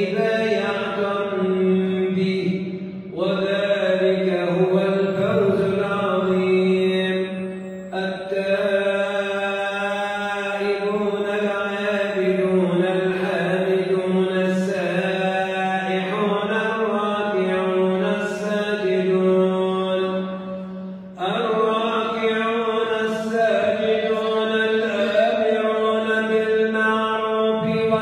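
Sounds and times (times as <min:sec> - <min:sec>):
man chanting melodic recitation: 0:00.0 - 0:28.0.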